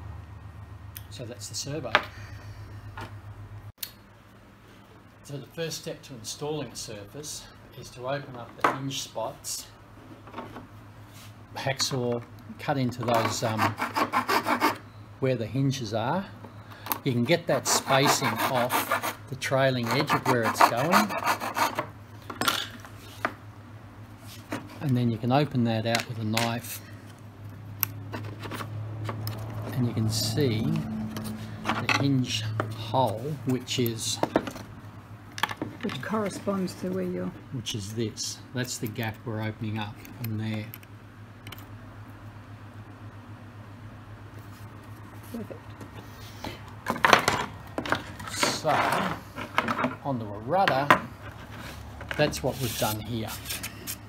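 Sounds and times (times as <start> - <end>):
parts and tools clattering on wood: 22.2 - 23.4, 31.1 - 32.7, 34.2 - 34.7, 35.4 - 36.5, 46.8 - 50.0.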